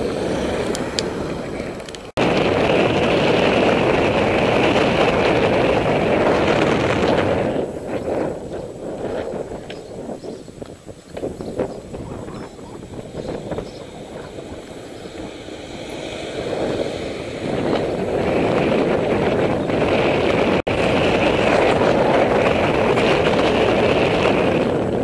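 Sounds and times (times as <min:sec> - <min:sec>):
bicycle road noise: 0:00.0 - 0:25.0
wind noise: 0:00.0 - 0:25.0.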